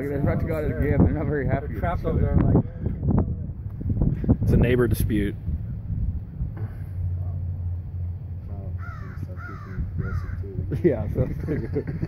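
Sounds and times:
bird harsh calls: 8.8 - 10.6.

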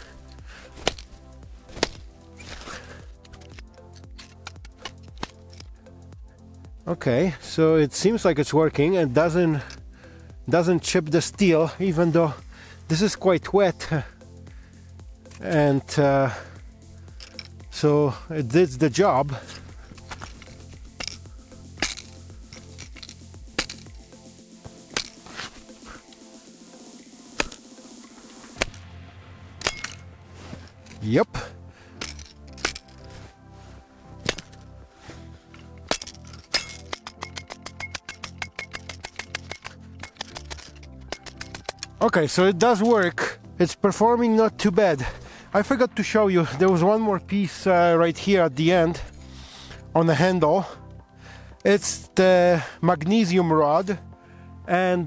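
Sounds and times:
shovel blade chopping wood: 0.0 - 5.7, 19.2 - 24.1, 24.7 - 26.2, 27.3 - 27.7, 28.5 - 28.9, 29.6 - 33.2, 34.2 - 34.7, 35.5 - 42.0
background music: 0.0 - 55.0.

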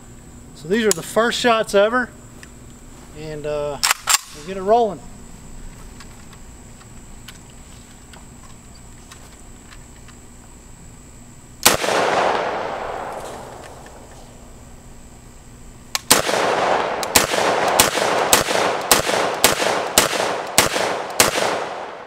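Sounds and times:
rifle shots echoing: 11.6 - 14.5, 16.0 - 22.0.

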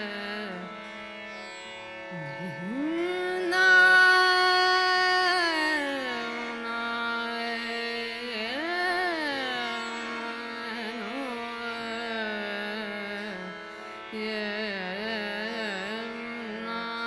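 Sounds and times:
woman singing classical vocals: 0.0 - 0.7, 2.1 - 13.5, 14.1 - 17.0
tanpura drone: 0.0 - 17.0.

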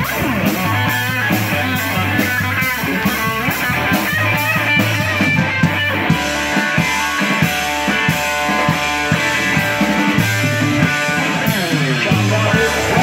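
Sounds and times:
drum kit beat: 0.0 - 13.0
electric guitar lead with bent notes: 0.0 - 13.0.

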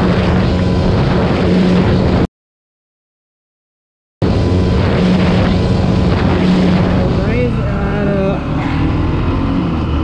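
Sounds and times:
wind on microphone: 0.0 - 2.3, 4.2 - 10.0
motorcycle engine at high revs: 4.7 - 10.0.

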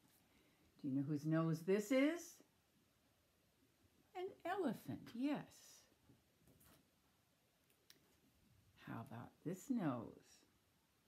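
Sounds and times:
woman speaking: 0.8 - 2.5, 4.1 - 6.0, 8.8 - 10.5.

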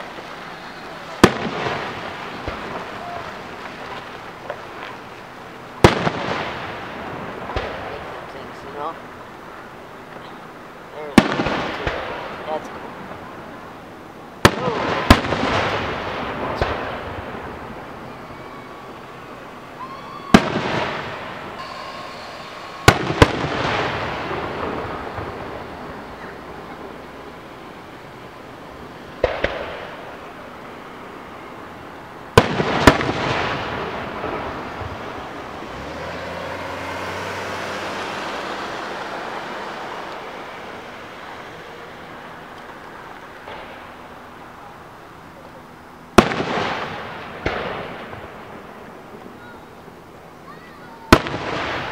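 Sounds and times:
firework shells bursting: 0.0 - 8.3, 14.4 - 31.2, 32.2 - 35.6.

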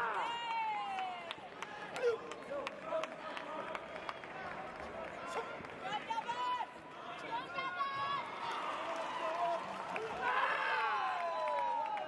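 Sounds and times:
arena hall background: 0.0 - 12.0.

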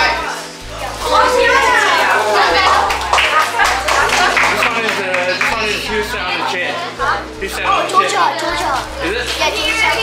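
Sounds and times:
children chattering: 0.0 - 8.8
background music: 0.0 - 10.0.

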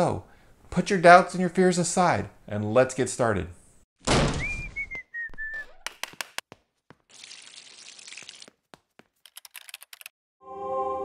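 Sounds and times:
short falling whistle: 4.3 - 5.8
rapid clicks: 9.2 - 10.1
ambient synth chord: 10.4 - 11.0.

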